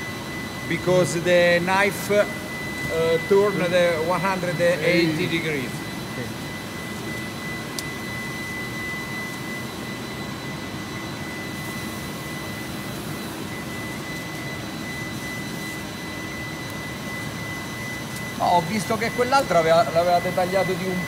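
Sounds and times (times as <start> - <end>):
machinery whirring with high whine: 0.0 - 21.0.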